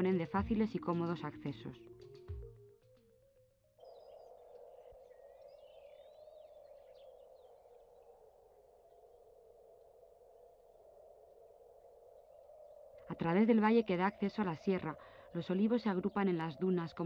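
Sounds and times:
birds chirping faintly: 0.0 - 17.0.

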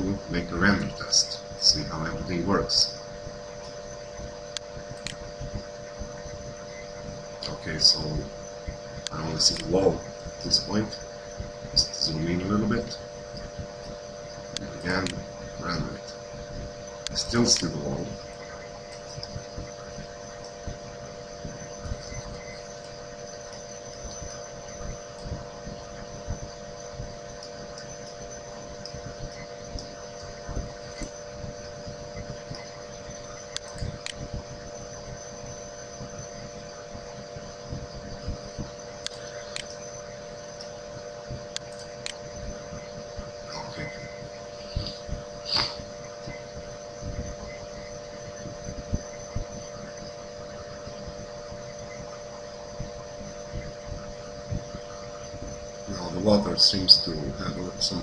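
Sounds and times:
steady background hum: 0.0 - 58.0.

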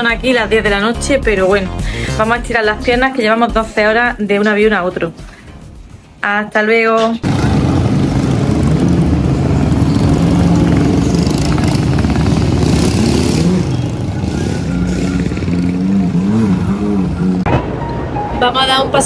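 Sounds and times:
dirt bike engines revving: 7.2 - 17.5.

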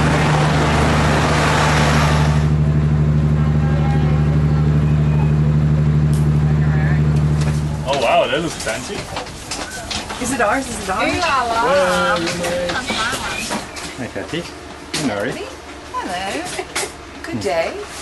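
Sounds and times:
rushing noise: 0.0 - 5.7
locomotive engine humming: 0.0 - 18.0
voices: 2.6 - 17.9.

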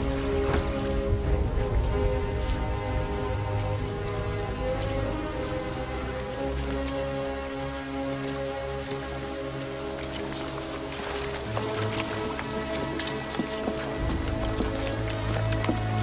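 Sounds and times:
low rumble: 0.0 - 5.9
heavy rain on water and mud: 0.0 - 16.0
slow sustained music chords: 0.0 - 16.0.

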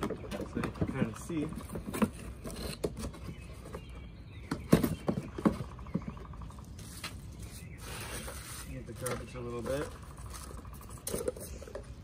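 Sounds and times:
cardboard box scraping: 6.8 - 9.3.

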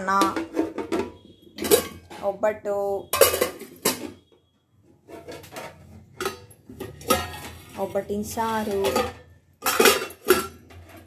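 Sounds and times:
pot lid clanking on pots: 0.0 - 2.4, 3.1 - 4.2, 5.1 - 7.9, 8.6 - 11.0.

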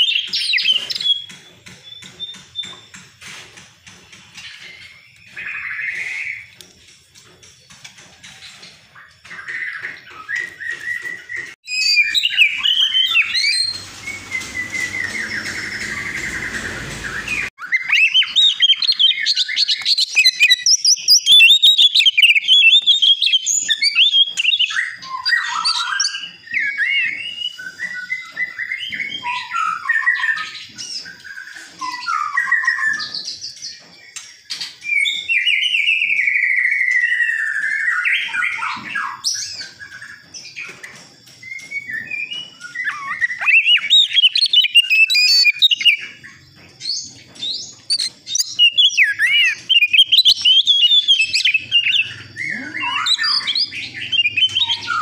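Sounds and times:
magpie-robin singing: 0.0 - 2.9, 9.0 - 33.8, 41.4 - 55.0.

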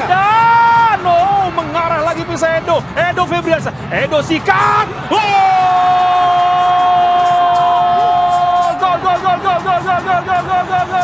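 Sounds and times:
commentator shouting: 0.0 - 11.0.

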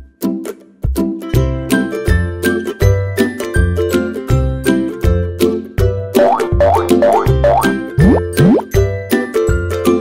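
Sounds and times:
cheerful cartoon music: 0.0 - 10.0.

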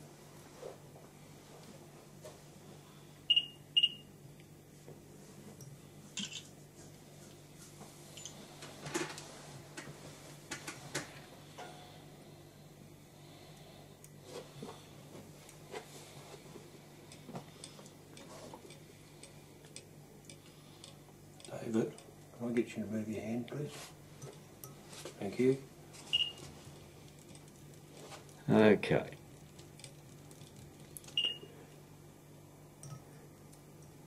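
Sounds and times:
faint clicks and taps of tools: 17.1 - 22.1.

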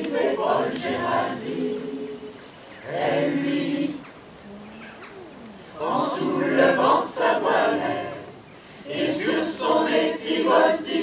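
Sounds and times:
choir singing unaccompanied: 0.0 - 4.6, 5.6 - 11.0.

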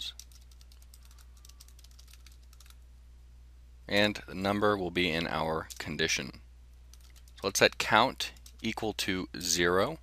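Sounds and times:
keyboard typing: 0.0 - 2.8, 6.9 - 8.7
low steady hum: 0.0 - 10.0.

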